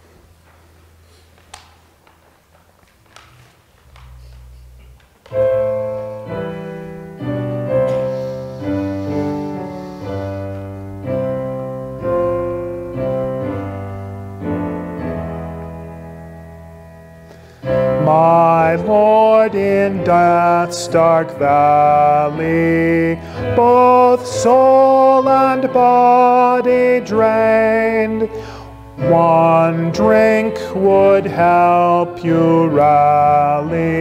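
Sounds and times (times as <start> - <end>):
piano chords: 0.0 - 34.0.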